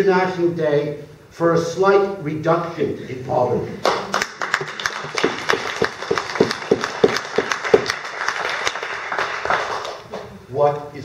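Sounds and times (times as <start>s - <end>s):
loud individual claps: 3.8s - 10.3s
small audience applauding: 3.8s - 10.3s.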